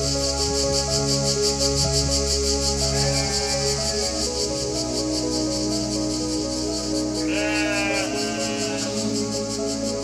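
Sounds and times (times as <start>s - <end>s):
background music: 0.0s - 10.0s
sheep bleating: 7.2s - 8.9s.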